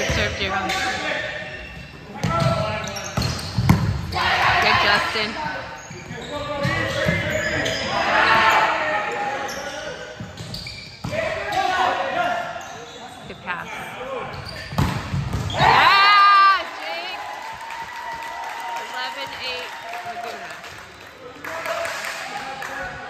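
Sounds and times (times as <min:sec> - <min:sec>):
players and spectators calling: 0:04.1 - 0:09.9, 0:15.4 - 0:23.0
crowd cheering: 0:15.5 - 0:23.0.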